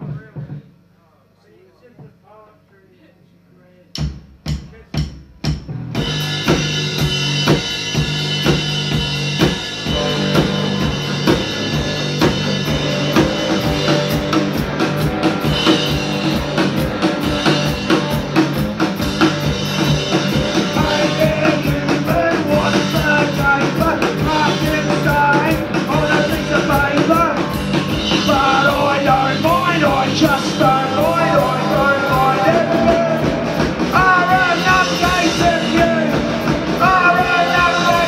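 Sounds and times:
drum kit beat: 0:00.0 - 0:01.0, 0:03.9 - 0:38.0
bass notes: 0:04.0 - 0:38.0
electric guitar melody: 0:06.1 - 0:38.0.

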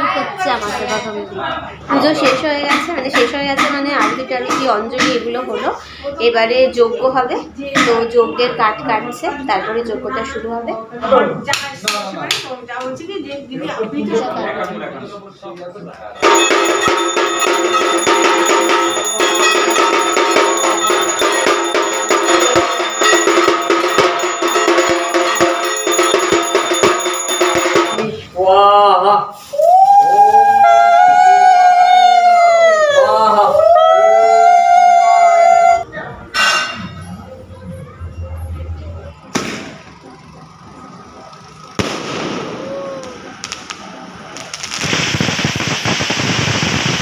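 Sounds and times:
percussion beat: 0:01.9 - 0:05.6, 0:07.6 - 0:08.2, 0:16.2 - 0:28.4
firework bangs with hiss: 0:16.2 - 0:28.0, 0:39.3 - 0:39.8, 0:41.7 - 0:47.0
metallic bells ringing: 0:16.2 - 0:28.4
fountain firework crackling hiss: 0:41.3 - 0:47.0.

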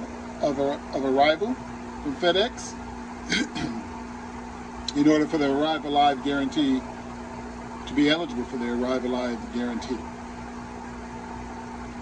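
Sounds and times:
equipment hum: 0:00.0 - 0:12.0.

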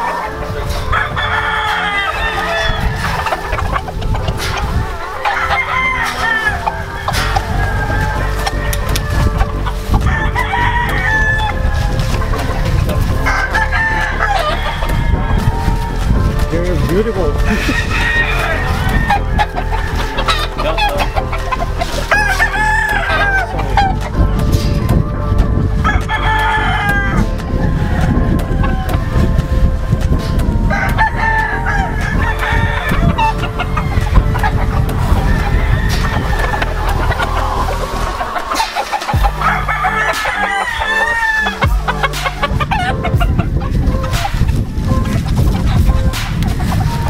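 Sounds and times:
roosters crowing: 0:00.0 - 0:47.0.

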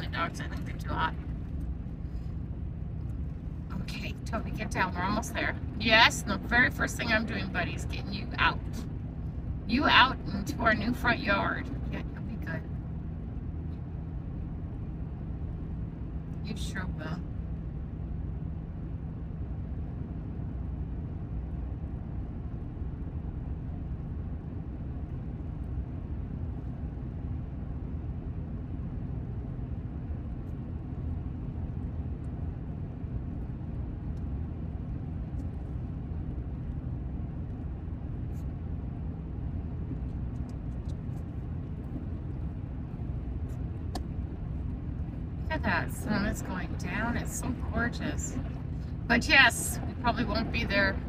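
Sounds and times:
car cabin road noise: 0:39.2 - 0:51.0.

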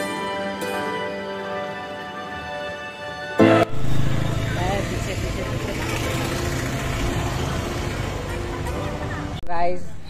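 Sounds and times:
roadside traffic: 0:00.0 - 0:10.0
vehicle engine humming: 0:03.5 - 0:09.4
voices: 0:04.2 - 0:10.0.

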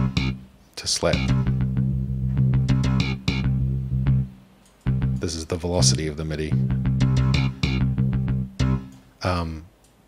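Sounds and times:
slap bass line: 0:00.0 - 0:09.0.

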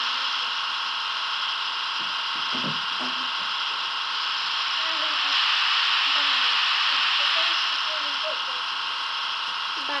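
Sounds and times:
model locomotive motor whirring: 0:00.0 - 0:10.0.

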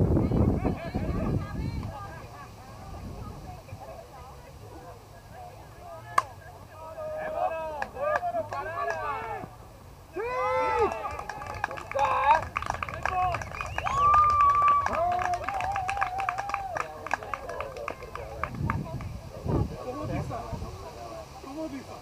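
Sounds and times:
voices shouting and calling out: 0:00.0 - 0:22.0.

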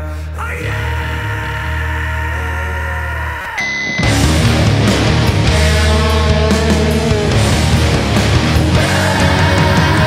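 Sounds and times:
low bass notes: 0:00.0 - 0:10.0
noise rock band: 0:00.0 - 0:10.0
high-pitched tone: 0:03.5 - 0:04.7.

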